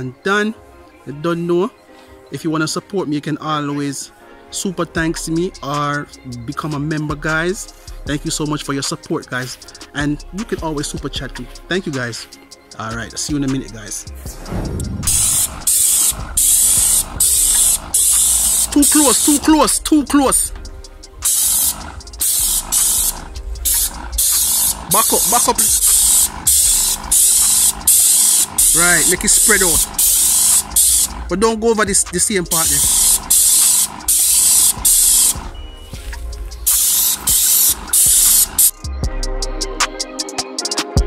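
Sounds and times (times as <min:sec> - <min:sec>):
paint sprayer hissing: 0:14.2 - 0:38.8.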